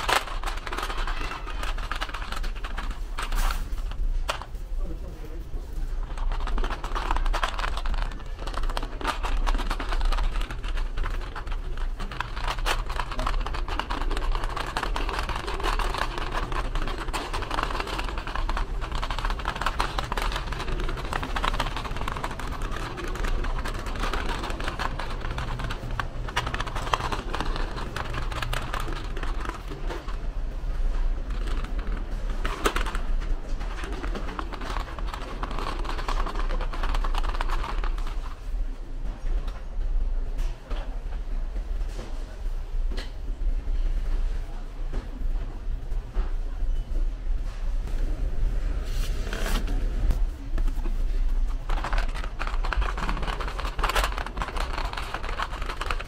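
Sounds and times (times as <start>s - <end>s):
rattle of small clicks: 0.0s - 4.5s.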